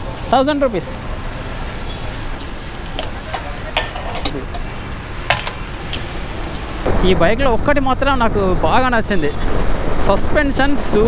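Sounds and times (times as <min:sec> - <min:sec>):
sharp clicks and knocks: 0:05.3 - 0:06.6.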